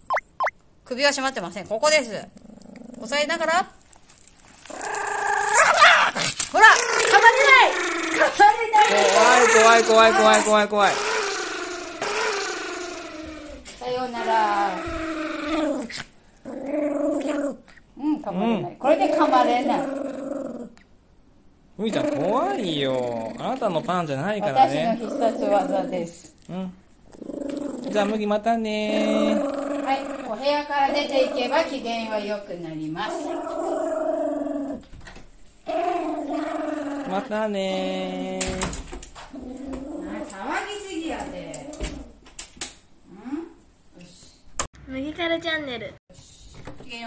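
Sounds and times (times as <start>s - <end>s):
dog growling: 2.3s - 3.7s, 4.6s - 20.8s, 21.8s - 26.3s, 27.0s - 32.3s, 33.0s - 34.9s, 35.6s - 37.3s, 39.2s - 42.2s.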